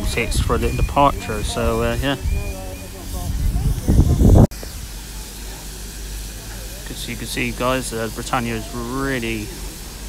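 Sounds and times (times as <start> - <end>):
faint distant voices: 0.0 - 10.0
low rush on microphone: 0.0 - 10.0
low steady rumble: 0.0 - 10.0.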